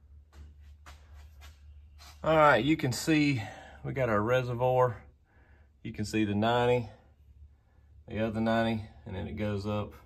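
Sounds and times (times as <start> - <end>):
low steady hum: 0.0 - 10.0
faint soft rustles: 0.1 - 3.0.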